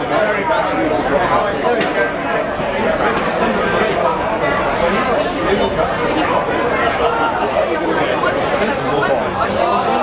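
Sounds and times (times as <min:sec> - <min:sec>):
crowd chattering: 0:00.0 - 0:10.0.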